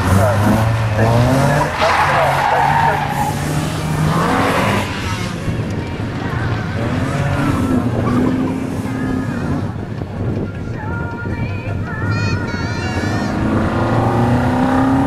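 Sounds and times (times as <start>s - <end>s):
car engine revving: 0.0s - 9.9s, 13.2s - 15.0s.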